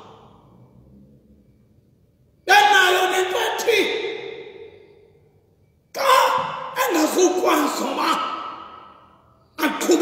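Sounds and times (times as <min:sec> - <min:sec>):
man preaching loudly: 0:02.4 - 0:04.7, 0:05.9 - 0:09.0, 0:09.6 - 0:10.0.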